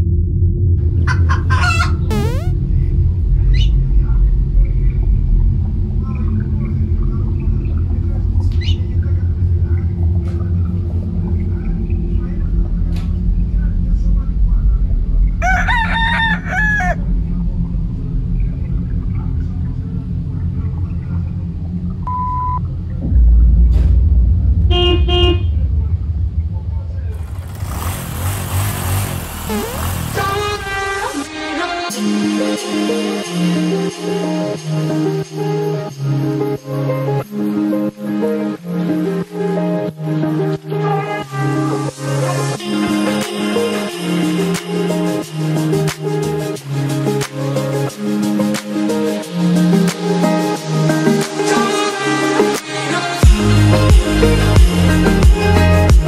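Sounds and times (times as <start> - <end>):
steady low rumble: 0.0 - 1.3, 1.9 - 15.4, 17.0 - 31.3
rooster crowing: 1.3 - 2.0, 15.4 - 17.0
short high call bending in pitch: 2.1 - 2.6
car horn tooting: 24.7 - 25.6.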